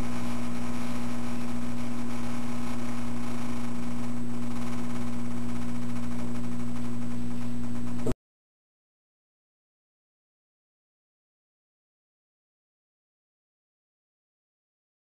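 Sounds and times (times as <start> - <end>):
electrical mains hum: 0.0 - 8.2.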